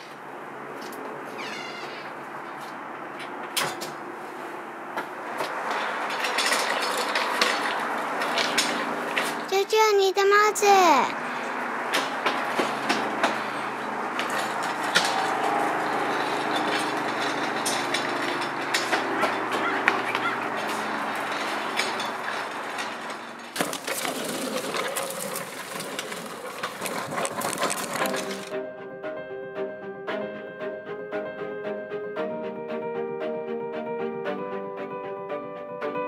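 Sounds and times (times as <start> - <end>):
bicycles rattling over pavement: 5.2 - 9.5, 11.1 - 28.5
music: 28.1 - 36.0.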